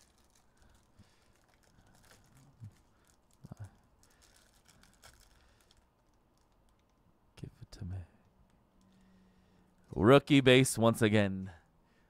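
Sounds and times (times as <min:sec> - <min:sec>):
foil wrapper crinkling: 0:00.0 - 0:07.0.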